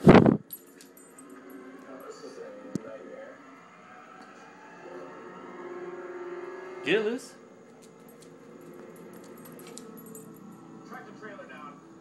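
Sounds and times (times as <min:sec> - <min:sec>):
dog collar tags jingling: 0:00.4 - 0:02.2, 0:07.7 - 0:10.7
tv broadcast with music and voice: 0:01.2 - 0:07.7, 0:10.6 - 0:12.0.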